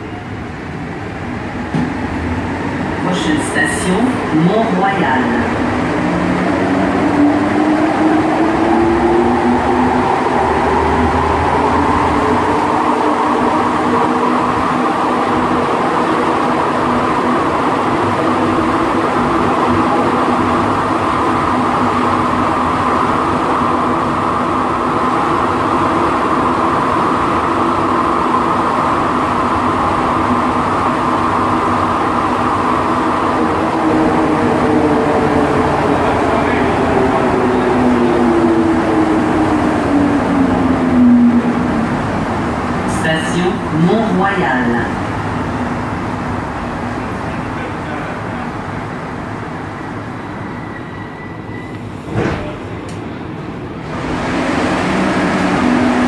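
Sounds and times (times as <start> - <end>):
train running rumble: 0.0 - 56.0
train traction motor whine: 52.8 - 56.0.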